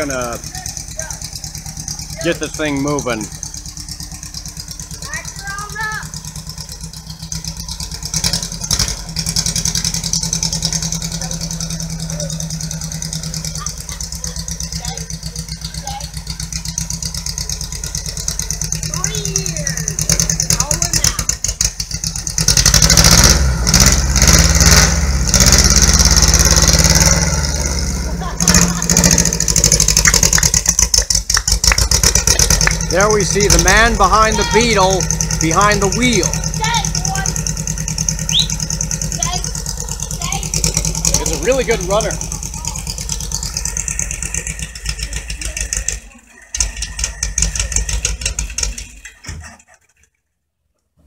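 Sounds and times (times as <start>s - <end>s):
car engine revving: 0.0s - 49.2s.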